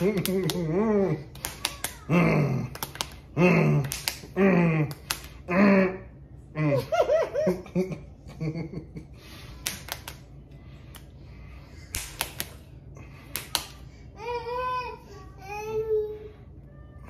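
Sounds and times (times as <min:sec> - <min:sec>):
fists striking open palms: 0:02.7 - 0:03.2, 0:03.8 - 0:05.4, 0:11.9 - 0:12.6, 0:13.2 - 0:13.8
stifled laughter and humming: 0:03.3 - 0:09.4.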